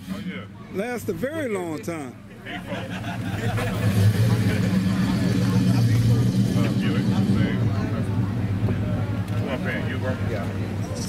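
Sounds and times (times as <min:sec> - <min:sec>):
voices chattering: 0:00.0 - 0:11.0
vehicle engine idling: 0:02.4 - 0:11.0.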